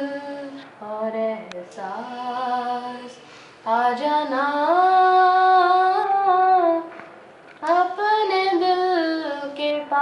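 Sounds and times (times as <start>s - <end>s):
woman singing unaccompanied: 0.0s - 7.0s, 7.6s - 10.0s
breath: 3.2s - 3.7s.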